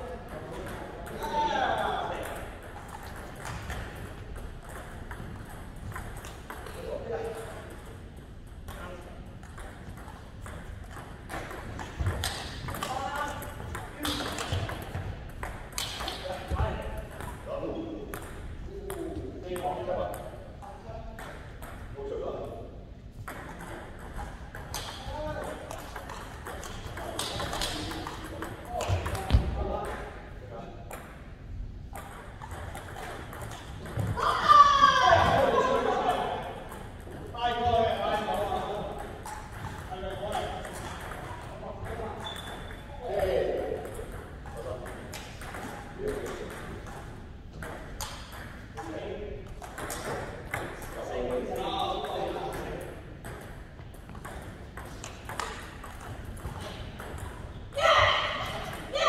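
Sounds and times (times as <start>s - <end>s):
people talking: 0.0s - 2.5s, 34.2s - 36.6s, 37.2s - 39.2s, 39.8s - 45.0s, 45.6s - 46.8s
table tennis balls clicking: 0.2s - 17.5s, 23.2s - 29.3s, 31.9s - 34.2s, 35.8s - 57.7s.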